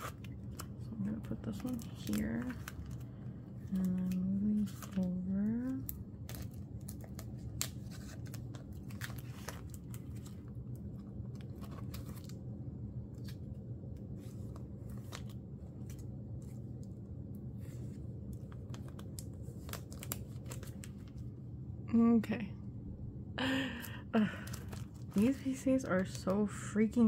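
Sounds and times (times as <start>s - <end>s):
plastic sleeves rustling and crinkling: 0.0s - 21.4s, 24.2s - 27.0s
low steady hum: 0.0s - 27.0s.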